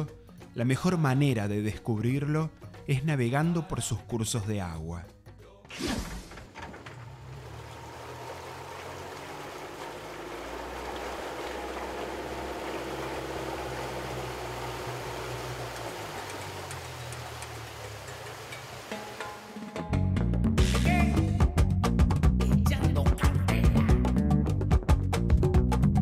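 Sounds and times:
boat motor running: 0:06.7 - 0:19.6
water rushing past hull: 0:06.7 - 0:19.8.

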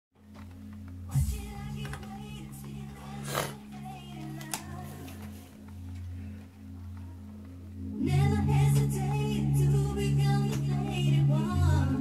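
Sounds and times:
vinyl record music through speakers: 0:00.2 - 0:12.0.

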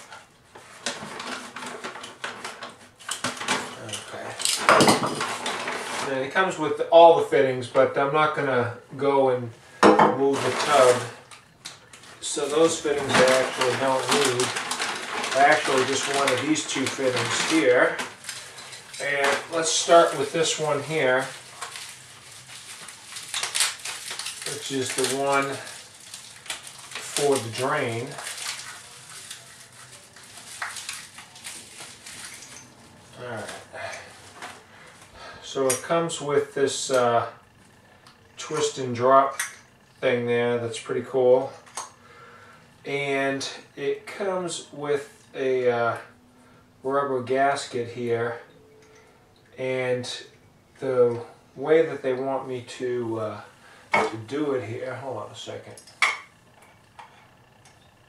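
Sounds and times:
plastic packaging crinkling: 0:00.0 - 0:06.3, 0:10.2 - 0:35.7.

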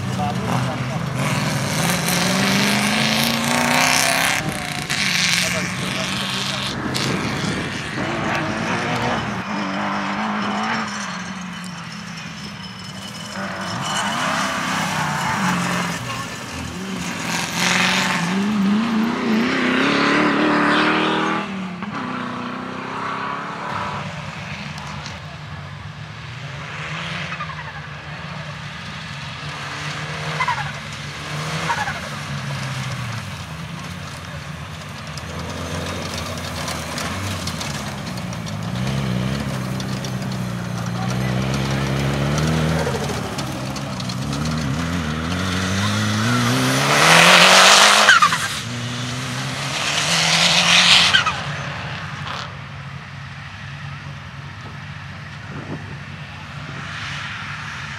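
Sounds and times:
truck accelerating hard close by: 0:00.0 - 0:25.4, 0:26.2 - 0:52.7
off-road truck engines revving: 0:00.0 - 0:57.9.

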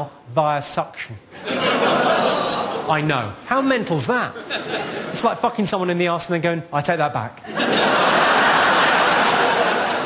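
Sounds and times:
audience laughing: 0:01.3 - 0:03.3, 0:04.3 - 0:05.6, 0:07.4 - 0:10.0.

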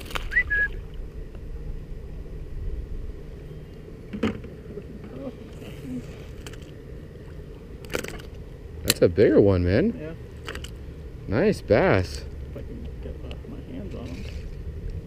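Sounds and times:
wind and mic handling rumble: 0:00.0 - 0:15.0
short high chirp: 0:00.3 - 0:00.8.

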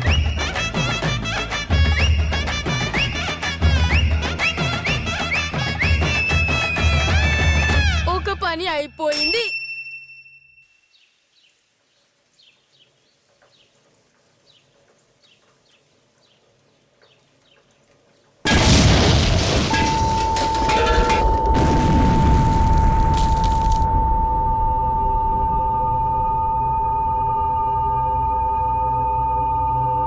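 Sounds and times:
loud boom with dense rumble: 0:18.5 - 0:20.2, 0:21.0 - 0:26.1
steady high tone: 0:19.8 - 0:30.0.

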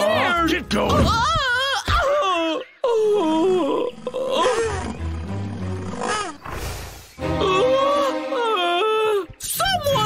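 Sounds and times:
cartoon background music: 0:00.0 - 0:01.8, 0:03.3 - 0:10.0
character's wordless gliding cries: 0:07.2 - 0:09.4.

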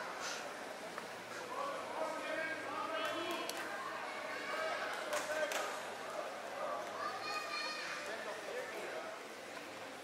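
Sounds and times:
people talking and calling out: 0:00.0 - 0:09.8.

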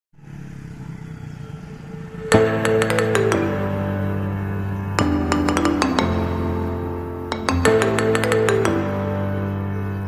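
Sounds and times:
traffic noise: 0:00.2 - 0:07.4
motorcycle engine running: 0:00.2 - 0:10.0.

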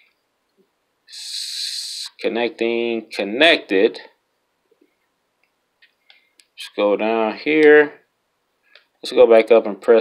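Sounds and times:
person speaking: 0:01.1 - 0:04.2, 0:06.4 - 0:08.1.

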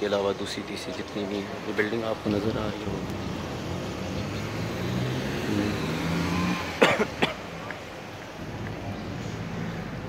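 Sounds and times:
person coughing: 0:06.8 - 0:07.4.

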